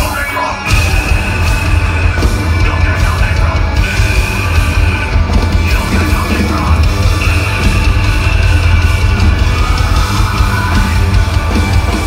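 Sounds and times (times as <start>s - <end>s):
bass guitar: 0.0s - 12.0s
distorted electric guitars: 0.0s - 12.0s
drums: 0.0s - 12.0s.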